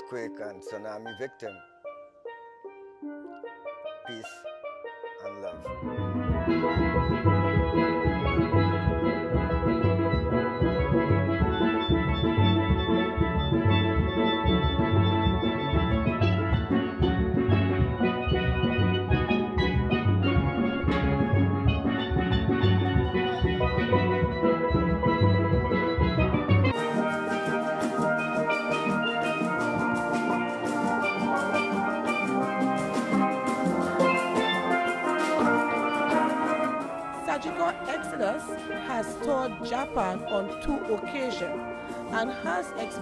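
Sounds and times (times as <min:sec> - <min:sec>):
steel band music: 0:00.0 - 0:43.0
deep bass pans beating: 0:05.2 - 0:40.8.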